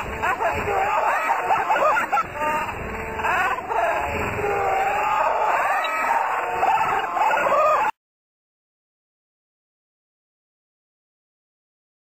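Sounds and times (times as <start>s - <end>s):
people calling out excitedly: 0.2s - 7.9s.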